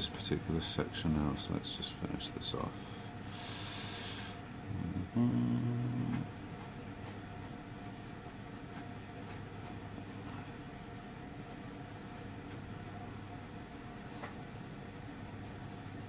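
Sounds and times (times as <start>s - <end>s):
steady low hum: 0.0s - 16.0s
pencil scratching on paper: 6.1s - 9.8s, 11.4s - 12.7s, 15.0s - 16.0s.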